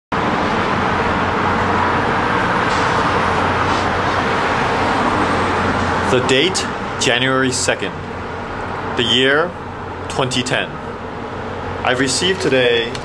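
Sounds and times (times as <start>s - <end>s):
city traffic noise: 0.1s - 13.0s.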